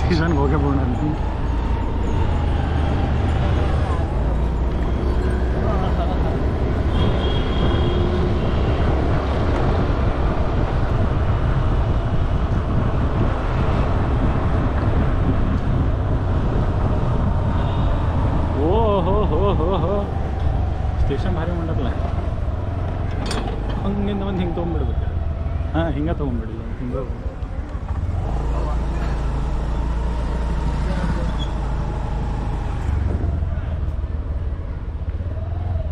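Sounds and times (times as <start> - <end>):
street traffic rumble: 0.0 - 35.9
vehicle wind and road noise: 0.0 - 35.9.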